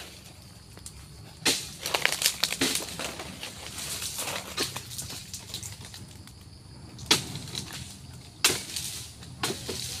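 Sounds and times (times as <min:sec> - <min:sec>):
crackling and rustling: 0:00.0 - 0:10.0.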